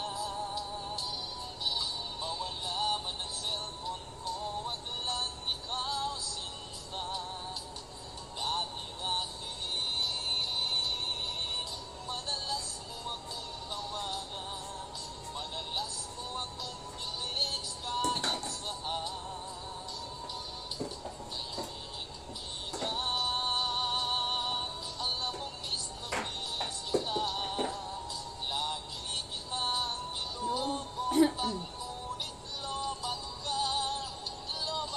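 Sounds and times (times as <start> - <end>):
love song with singer: 0.0 - 34.9.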